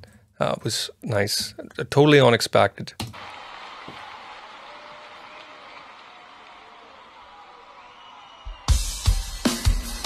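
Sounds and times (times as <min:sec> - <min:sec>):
arena crowd noise: 0:03.1 - 0:09.1.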